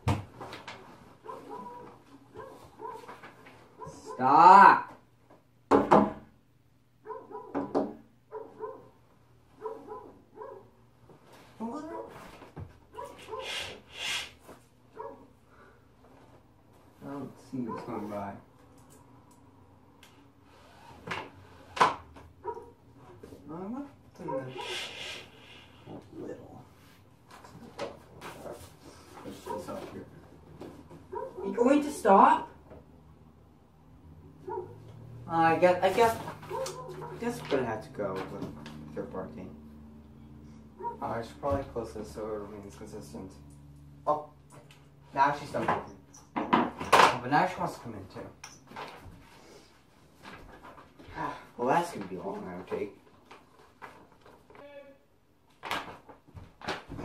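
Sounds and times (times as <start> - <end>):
distant dog barking: 1.2 - 4.4, 7.0 - 7.7, 8.3 - 9.0, 9.6 - 10.8, 12.9 - 13.8, 14.9 - 15.4, 17.6 - 18.1, 22.4 - 22.8, 24.2 - 25.2, 31.0 - 31.6, 34.4 - 35.0, 36.5 - 37.4, 40.6 - 41.1
paper rustling: 35.8 - 38.3.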